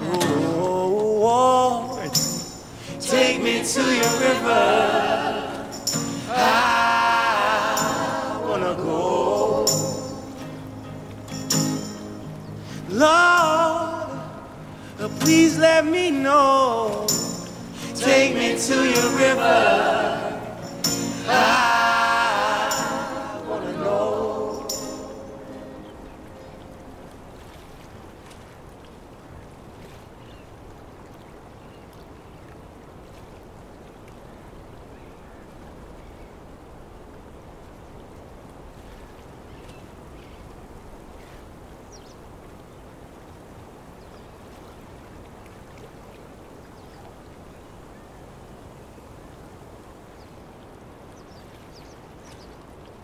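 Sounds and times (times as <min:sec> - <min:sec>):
low rushing outdoor ambience: 0:00.0 - 0:29.5.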